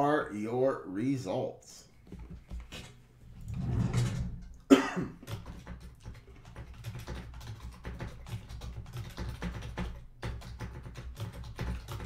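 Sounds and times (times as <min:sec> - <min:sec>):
man clearing his throat: 0:04.7 - 0:05.3
man coughing: 0:04.7 - 0:05.3.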